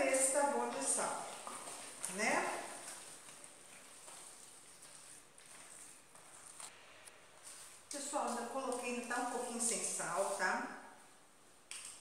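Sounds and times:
wet squishing of food mixture: 0:00.3 - 0:06.8.

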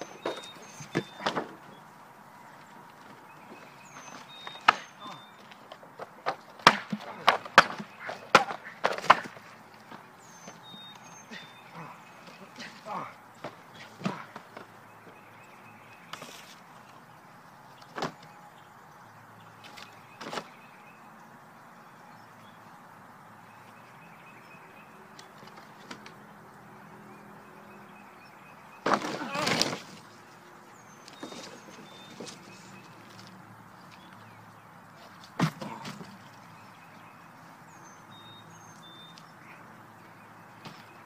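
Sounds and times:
cardboard boxes being crushed: 0:28.8 - 0:30.1.

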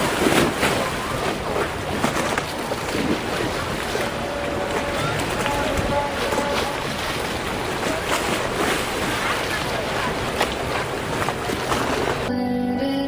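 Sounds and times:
wind on microphone: 0:00.0 - 0:12.3
crowd chatter: 0:03.4 - 0:12.0.

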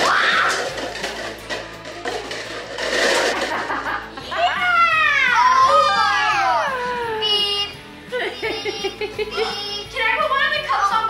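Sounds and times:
background music: 0:00.0 - 0:11.0
child shouting excitedly: 0:04.4 - 0:07.7
children's voices: 0:04.4 - 0:11.0.

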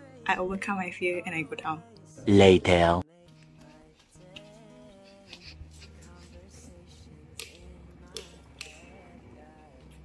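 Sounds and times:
light switches clicking: 0:07.4 - 0:08.9.

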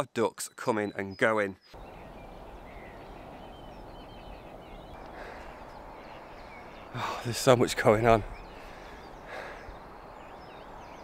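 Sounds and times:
faint outdoor ambience: 0:00.0 - 0:11.0
quiet bird calls: 0:00.2 - 0:11.0.

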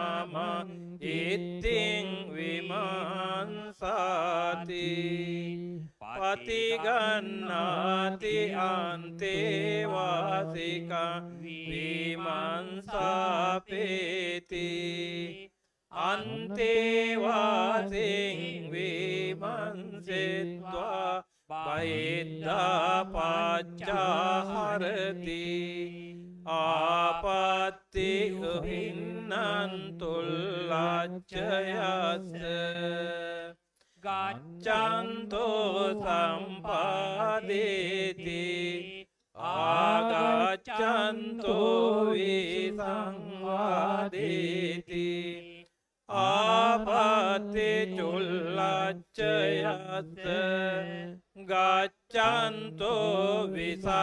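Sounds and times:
monks chanting into microphones: 0:00.0 - 0:54.0.

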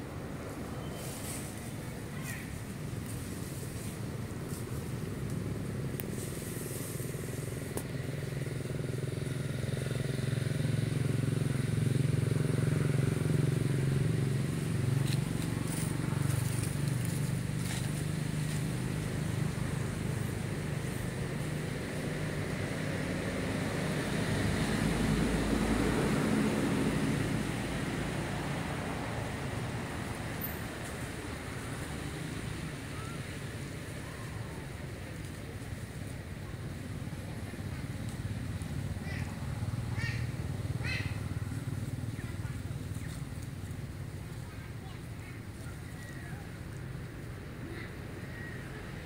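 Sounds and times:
vehicle engines passing: 0:00.0 - 0:49.0.

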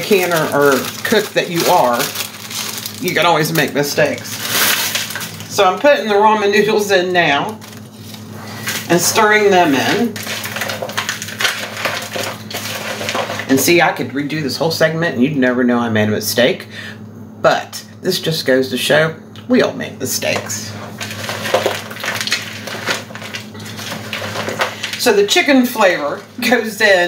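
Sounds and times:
steady low hum: 0:00.0 - 0:27.0
spoon stirring crunchy noodles: 0:07.6 - 0:13.6, 0:20.7 - 0:26.4.

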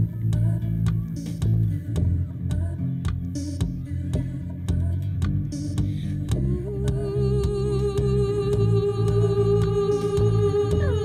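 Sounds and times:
low bass line: 0:00.0 - 0:11.0.

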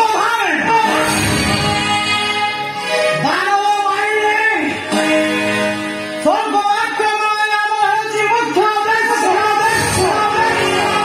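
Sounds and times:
instrumental accompaniment: 0:00.7 - 0:11.0.

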